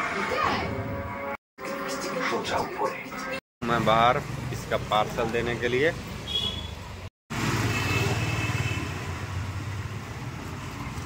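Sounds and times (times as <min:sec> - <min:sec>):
road traffic: 0:03.6 - 0:11.0.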